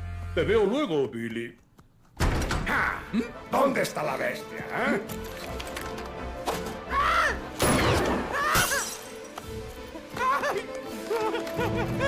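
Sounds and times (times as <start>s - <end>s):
film soundtrack music: 2.2s - 12.0s
glass shattering: 7.6s - 9.4s.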